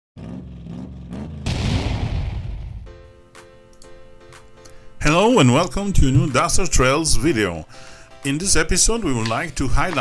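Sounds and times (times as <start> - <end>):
boom-like whoosh: 1.4 - 3.0
low rising rumble: 1.4 - 3.0.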